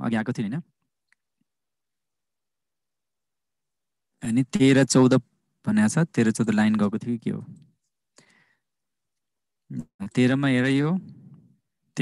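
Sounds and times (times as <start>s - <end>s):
person speaking: 4.2s - 7.8s.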